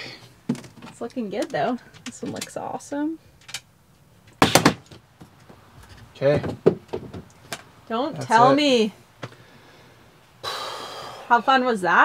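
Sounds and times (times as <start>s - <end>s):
window frame knocking: 6.4s - 7.3s.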